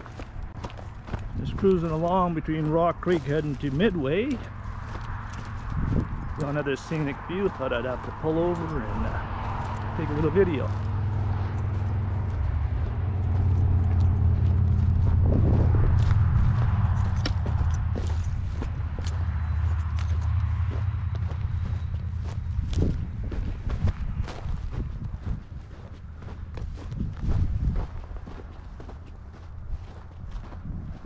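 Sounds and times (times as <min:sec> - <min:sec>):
footsteps crunching on grass and stones: 0:00.0 - 0:31.0
low steady rumble: 0:08.1 - 0:31.0.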